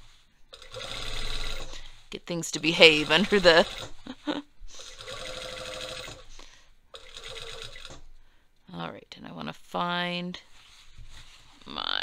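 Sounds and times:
sewing machine stitching: 0:00.5 - 0:02.0, 0:02.7 - 0:06.3, 0:07.0 - 0:08.1.

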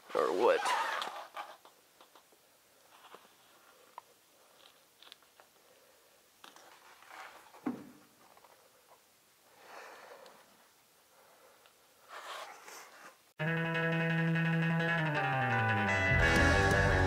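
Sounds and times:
faint rustling: 0:00.1 - 0:09.1.

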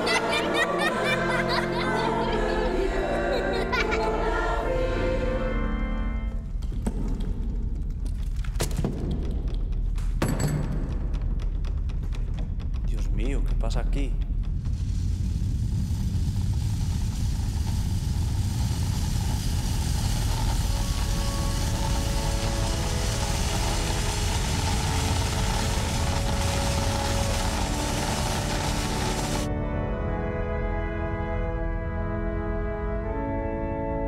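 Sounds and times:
sustained music notes: 0:00.0 - 0:06.6, 0:20.6 - 0:34.0
loud rushing noise with low rumble: 0:14.3 - 0:29.5.

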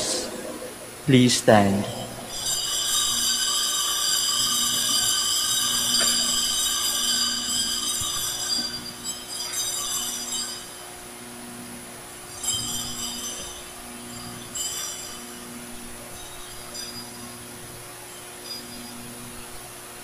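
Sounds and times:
bell ringing: 0:01.7 - 0:10.9, 0:12.2 - 0:19.3.

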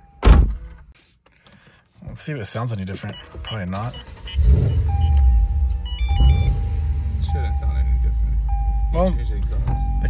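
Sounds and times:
car warning chime: 0:03.0 - 0:10.0
short beeps: 0:03.1 - 0:10.0.

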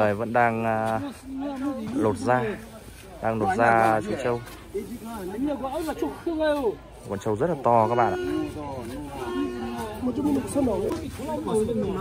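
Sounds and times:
man speaking: 0:00.0 - 0:12.0
people talking: 0:00.0 - 0:12.0.

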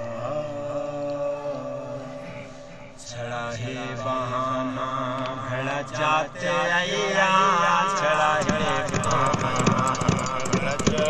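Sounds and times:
man singing long held note: 0:00.0 - 0:11.0.

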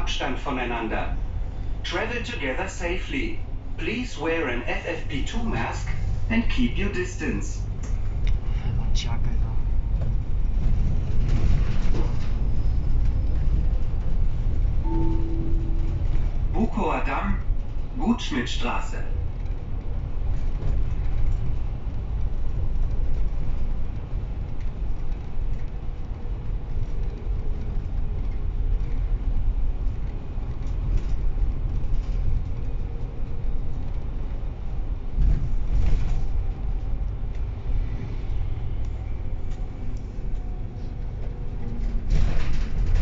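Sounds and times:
bus engine rumble: 0:00.0 - 0:43.0.

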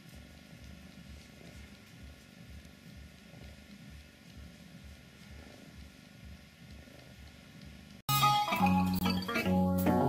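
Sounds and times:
cat purring: 0:00.0 - 0:08.0.

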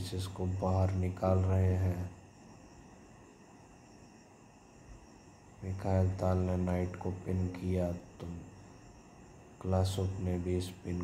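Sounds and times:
man narrating: 0:00.0 - 0:02.2, 0:05.6 - 0:08.5, 0:09.6 - 0:11.0
faint background noise: 0:00.0 - 0:11.0.

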